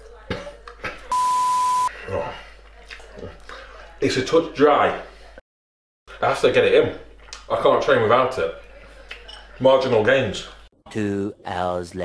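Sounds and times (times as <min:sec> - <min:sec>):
censor bleep: 0:01.1 - 0:01.9.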